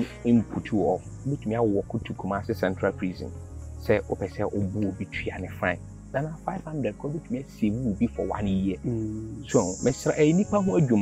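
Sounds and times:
high insect chirring: 0.0s - 11.0s
man talking: 0.0s - 11.0s.

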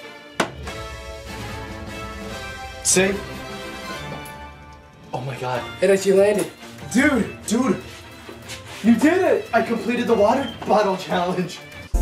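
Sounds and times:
bottle knocking on table: 0.4s - 0.8s.

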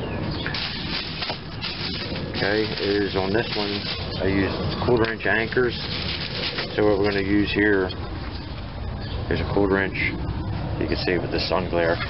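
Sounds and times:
plastic bag rustling: 0.5s - 7.6s.

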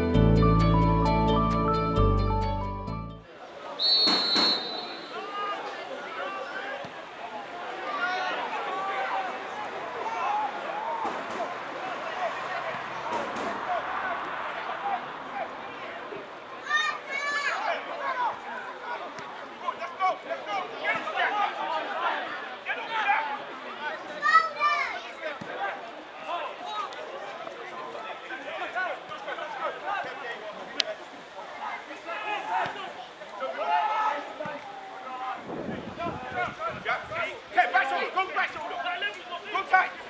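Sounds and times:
footballers shouting and calling: 3.2s - 40.0s.

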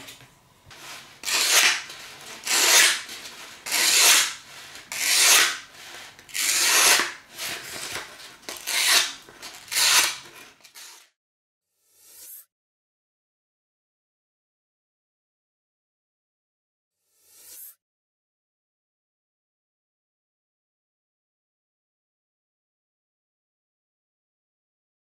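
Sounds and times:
knife blade strokes: 0.7s - 11.1s.

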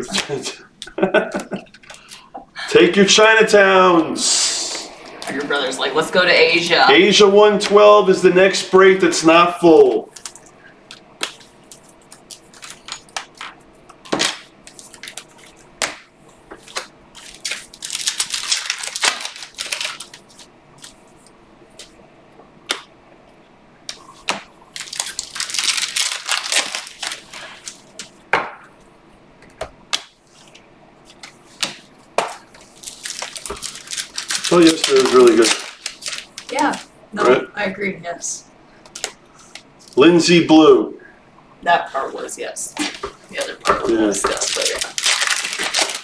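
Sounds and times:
cards rustling while shuffled: 9.9s - 21.2s, 23.9s - 28.2s, 29.9s - 36.9s, 42.8s - 46.0s
cards clicking and snapping: 10.1s - 21.0s, 29.4s - 30.2s, 31.1s - 36.8s, 38.8s - 39.7s, 42.9s - 46.0s.

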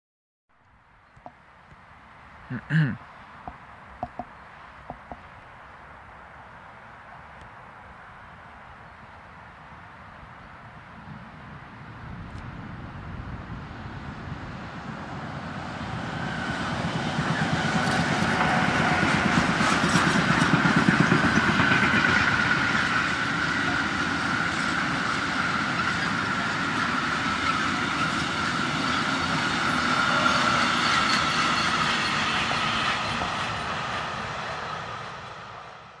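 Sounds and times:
freight train passing: 10.8s - 36.0s
wheels on rails: 16.0s - 33.7s.

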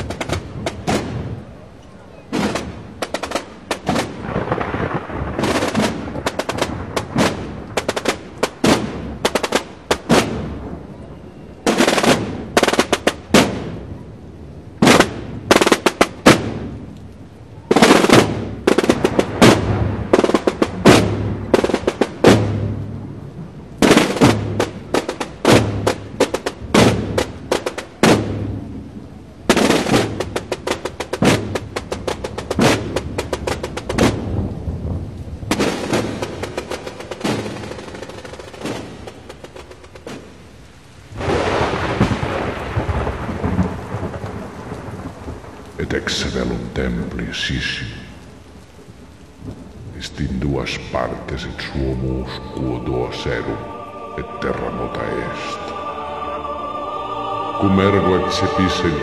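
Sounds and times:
snare drums beaten out of step: 5.4s - 10.4s, 14.8s - 16.7s, 17.7s - 22.7s, 23.8s - 28.4s, 29.5s - 34.2s
massed drums crashing: 17.8s - 22.7s, 23.8s - 28.5s.

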